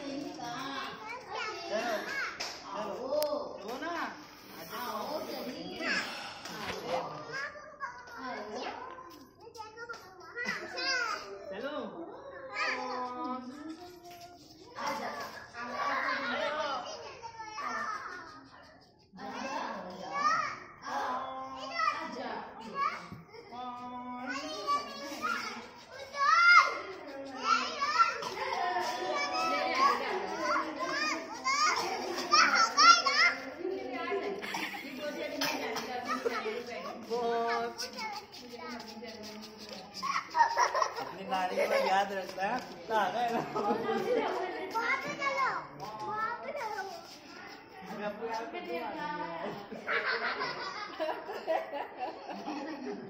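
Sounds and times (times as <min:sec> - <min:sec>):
children calling and shouting: 0:00.0 - 0:53.0.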